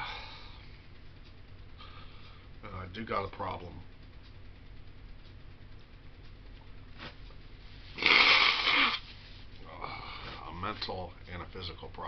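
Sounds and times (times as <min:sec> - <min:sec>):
man blowing his nose: 0:08.0 - 0:09.1.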